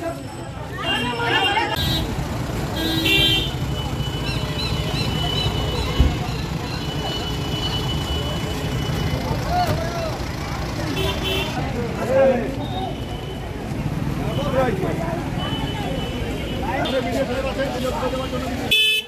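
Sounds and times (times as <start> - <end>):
crowd chatter: 0.0 - 19.0.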